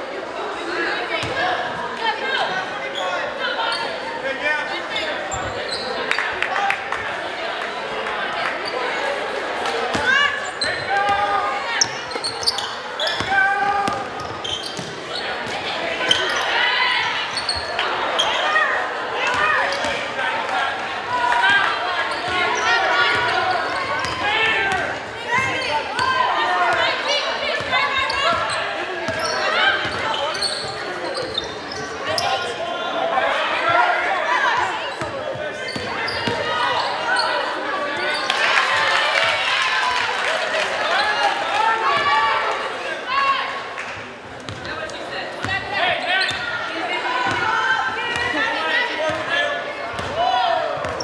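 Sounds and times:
voices of spectators and players: 0:00.0 - 0:51.0.

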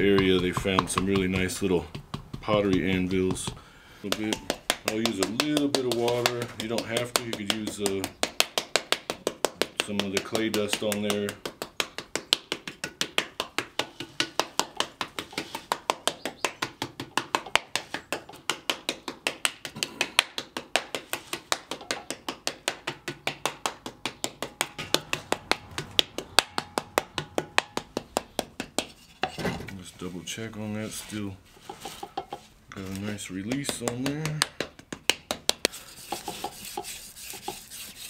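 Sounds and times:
wooden paddle slapping clay: 0:00.0 - 0:29.4, 0:30.8 - 0:38.0.

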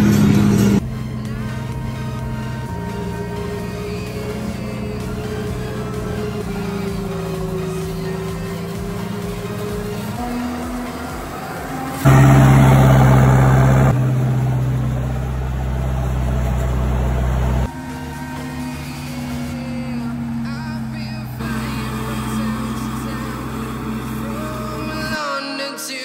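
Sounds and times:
background music: 0:00.0 - 0:14.0, 0:17.6 - 0:26.0.

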